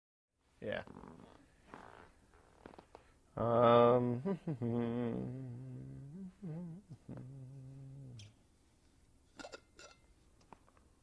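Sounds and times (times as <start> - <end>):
man humming low note: 3.4 - 8.4.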